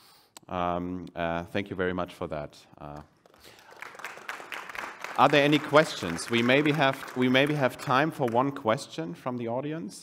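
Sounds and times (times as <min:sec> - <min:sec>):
audience applause: 0:03.3 - 0:08.6.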